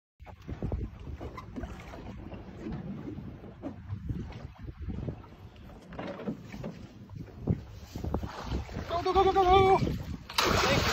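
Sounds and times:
water against hull: 0:00.2 - 0:10.9
wind buffeting microphone: 0:00.2 - 0:10.9.

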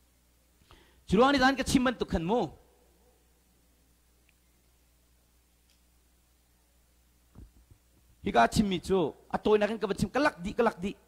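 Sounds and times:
faint low hum: 0:00.0 - 0:11.0
man speaking into a microphone: 0:01.1 - 0:02.6, 0:08.2 - 0:11.0.

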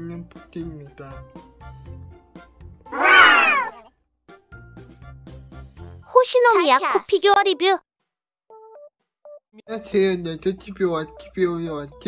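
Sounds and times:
meow-like call falling in pitch: 0:03.0 - 0:03.8
soft background music: 0:09.6 - 0:12.0.

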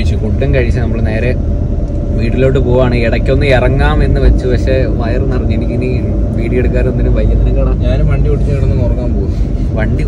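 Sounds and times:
car engine and tyres rumble: 0:00.0 - 0:10.0.

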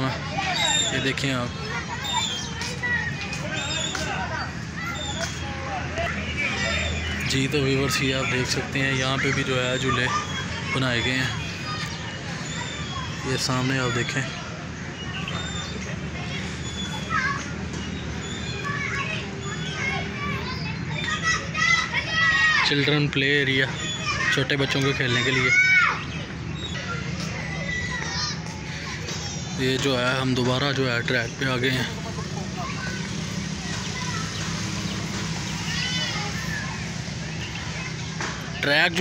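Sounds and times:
children shouting and chattering: 0:00.0 - 0:39.0.

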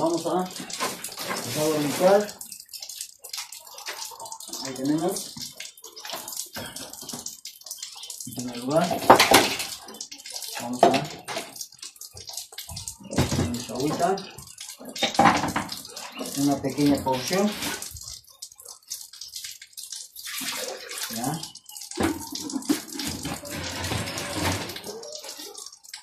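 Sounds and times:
water hissing: 0:00.0 - 0:02.6, 0:15.8 - 0:18.9, 0:20.1 - 0:25.8.

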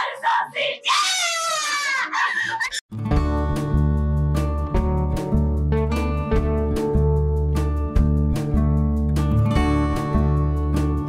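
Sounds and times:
woman screaming: 0:00.0 - 0:02.8
guitar music: 0:02.9 - 0:11.0.

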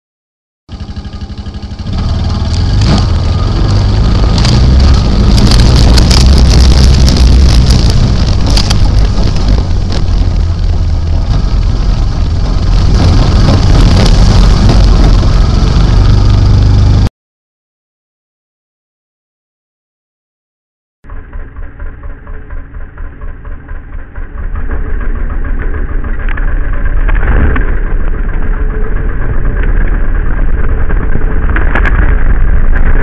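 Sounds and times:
atv engine running hard: 0:00.7 - 0:17.1, 0:21.1 - 0:33.0.

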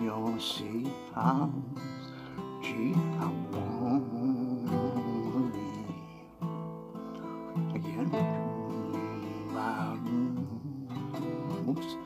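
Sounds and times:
man singing: 0:00.0 - 0:06.5, 0:07.2 - 0:12.0
acoustic guitar strumming: 0:00.0 - 0:12.0.

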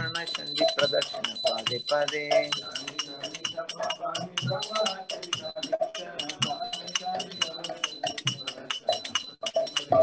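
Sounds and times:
hand cymbals clinking: 0:00.0 - 0:10.0
low voices: 0:00.0 - 0:10.0
people singing: 0:00.0 - 0:10.0.

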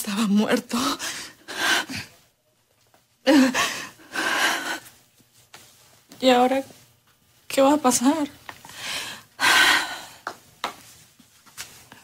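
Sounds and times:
woman crying: 0:03.3 - 0:04.7.

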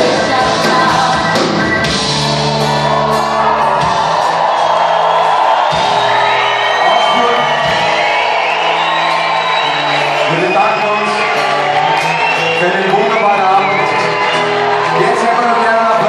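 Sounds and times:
audience cheering and whooping: 0:00.0 - 0:16.0
live band playing pop-rock: 0:00.0 - 0:16.0.

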